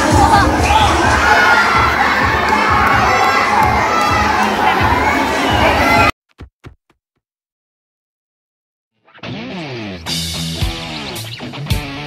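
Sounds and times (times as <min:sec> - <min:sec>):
children shouting and cheering: 0:00.0 - 0:06.1.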